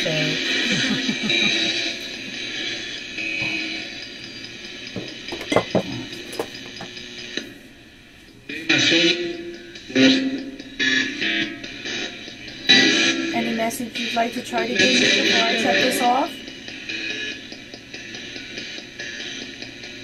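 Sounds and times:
radio static hissing: 0.0s - 7.4s.

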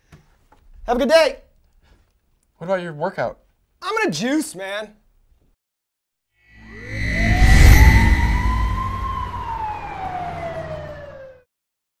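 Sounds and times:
siren-like tone rising and falling: 6.4s - 11.5s
low rumble: 6.6s - 10.6s.

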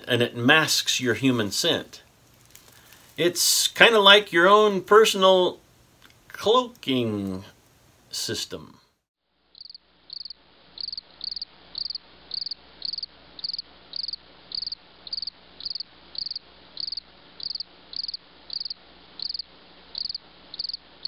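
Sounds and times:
cricket chirping: 9.5s - 20.9s.

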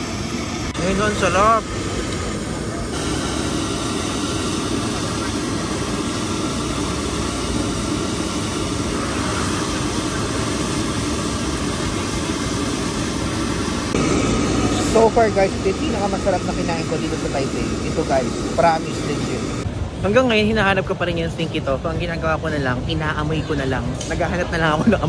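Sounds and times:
traffic rumble: 0.0s - 25.0s.

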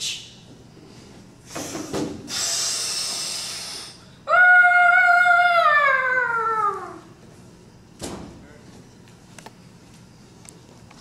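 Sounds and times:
person making hissing rush: 1.4s - 4.1s.

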